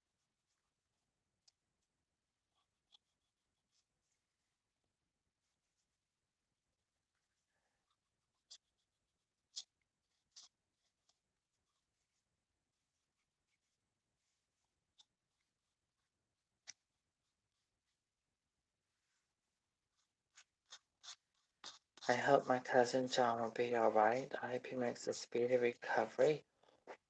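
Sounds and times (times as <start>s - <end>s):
nail file scraping plastic: 20.0s - 21.9s.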